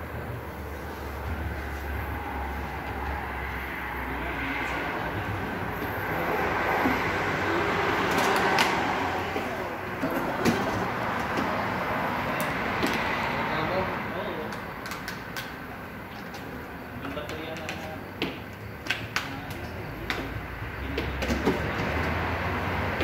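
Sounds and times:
mechanical hum: 0:00.0 - 0:23.0.

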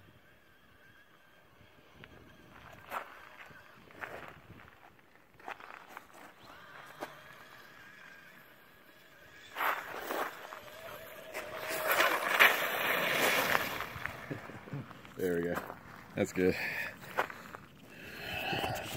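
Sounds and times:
electric motor whining: 0:06.3 - 0:15.1
tyre noise: 0:09.6 - 0:18.9.

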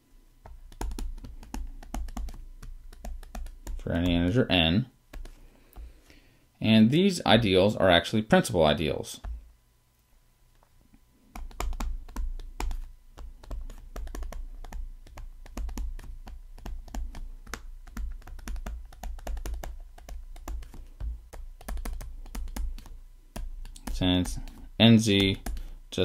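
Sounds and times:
stylus clicking on tablet: 0:00.4 - 0:04.4, 0:05.1 - 0:05.9, 0:11.4 - 0:25.7.

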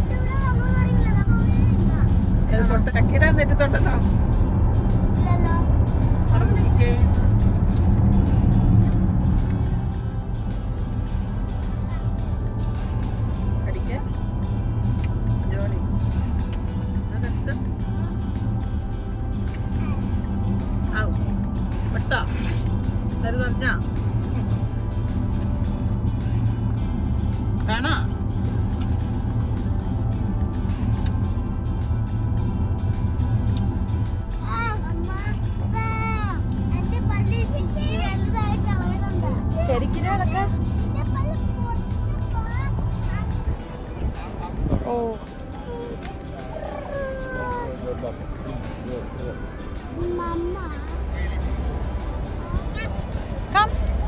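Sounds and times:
car road and engine rumble: 0:00.0 - 0:54.0
small child whining: 0:45.6 - 0:47.8.

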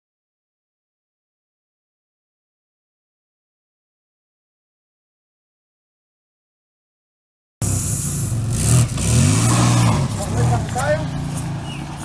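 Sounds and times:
vehicle engine revving: 0:07.6 - 0:12.0
voices calling out: 0:09.3 - 0:12.0.

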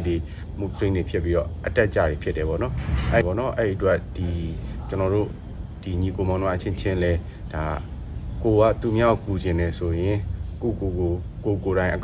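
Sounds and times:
crickets chirping: 0:00.0 - 0:12.0
man speaking: 0:00.0 - 0:12.0.

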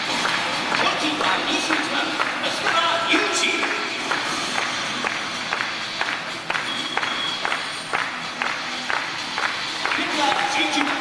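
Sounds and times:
music over loudspeakers with steady beat: 0:00.0 - 0:11.0.

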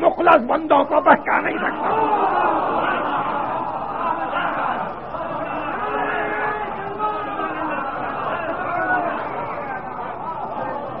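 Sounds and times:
voices on old tape recording: 0:00.0 - 0:11.0.

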